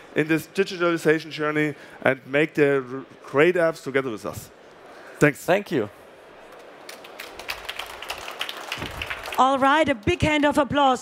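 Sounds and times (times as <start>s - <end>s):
audience applauding: 6.8s - 10.0s.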